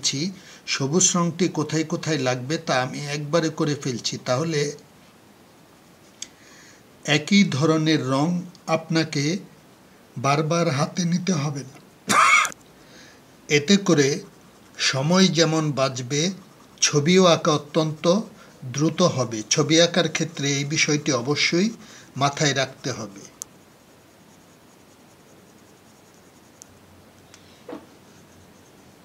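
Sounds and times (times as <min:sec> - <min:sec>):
throat-clearing cough: 0:12.1 - 0:12.5
man speaking: 0:13.5 - 0:23.4
pencil rubbing on paper: 0:13.5 - 0:26.6, 0:27.7 - 0:29.0.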